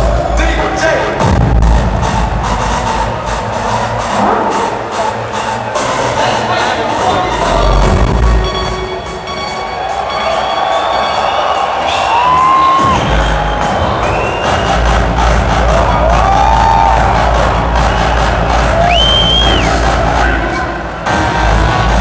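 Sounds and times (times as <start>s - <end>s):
crowd cheering: 0.0s - 22.0s
electronic dance music: 0.0s - 22.0s.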